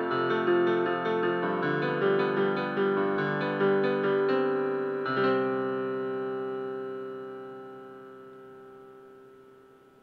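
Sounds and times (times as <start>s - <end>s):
piano chord ringing out: 0.0s - 10.0s.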